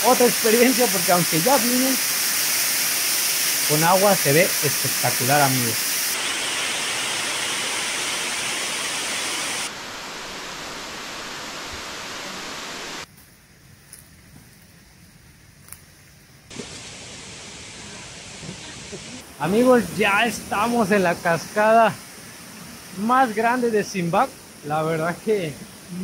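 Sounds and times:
waterfall rushing: 0:00.0 - 0:13.0, 0:16.6 - 0:26.0
shallow stream rushing: 0:00.0 - 0:13.1, 0:16.5 - 0:26.0.

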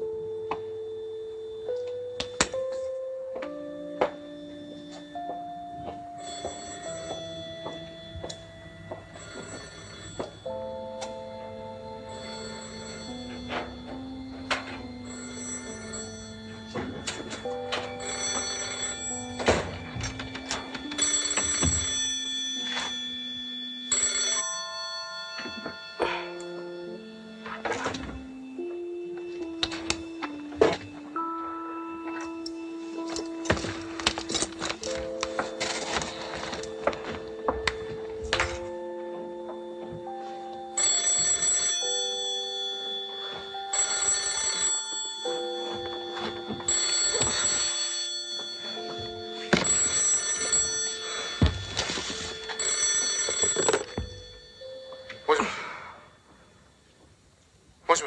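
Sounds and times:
telephone bell ringing: 0:00.0 - 0:56.9
slow background music: 0:00.0 - 0:58.0
film score sustained notes: 0:25.2 - 0:40.8.

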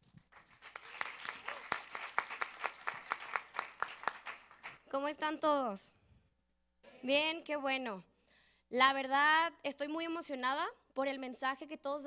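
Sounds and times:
audience applauding: 0:00.3 - 0:04.8.

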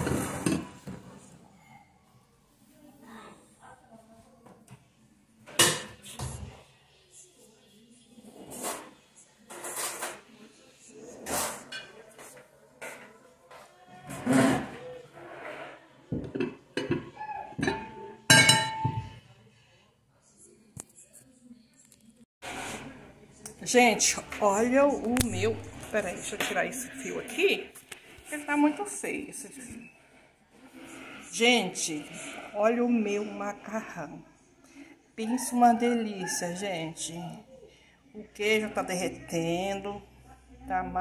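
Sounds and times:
glass dish clinking on table: 0:16.4 - 0:19.2.

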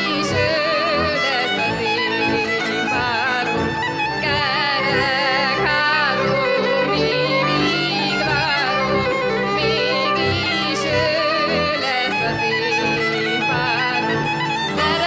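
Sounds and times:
fiddle: 0:00.0 - 0:15.0
woman singing: 0:00.0 - 0:15.0.

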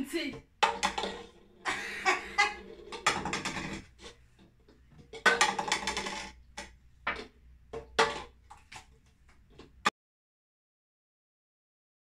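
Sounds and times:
plastic cups knocking on wooden table: 0:00.3 - 0:08.9.

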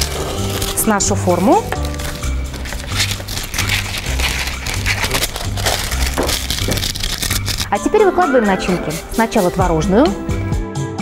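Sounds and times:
baking paper crackling and rustling: 0:00.0 - 0:07.7
scissors cutting paper: 0:00.0 - 0:07.7, 0:08.8 - 0:09.7.

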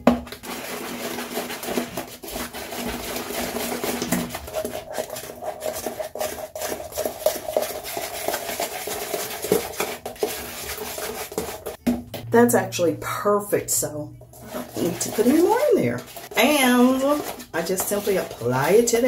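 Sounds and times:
comb scraping plastic tub: 0:00.2 - 0:12.9, 0:13.5 - 0:19.0.

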